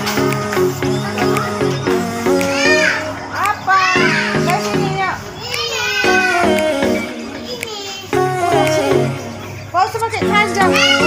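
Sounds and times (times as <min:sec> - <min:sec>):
children shouting and squealing: 0:00.0 - 0:09.4, 0:10.4 - 0:11.0
music with held notes: 0:00.0 - 0:11.0.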